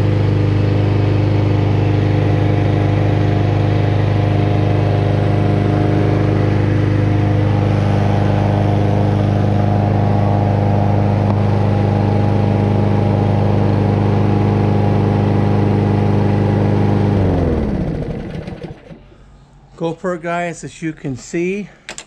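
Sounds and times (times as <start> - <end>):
lawn mower engine running: 0.0 - 19.3.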